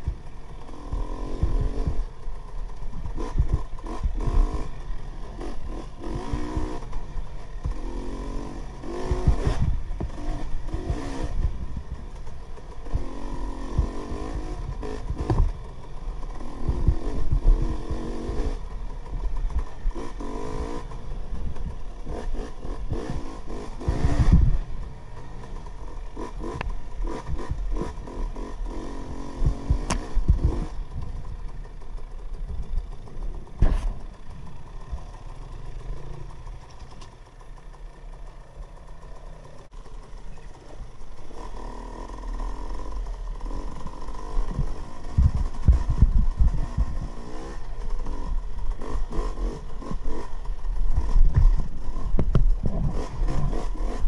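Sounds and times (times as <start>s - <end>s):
dirt bike engine revving: 0.0s - 54.0s
bike knocking over ruts: 14.7s - 15.8s, 33.5s - 34.1s, 50.9s - 54.0s.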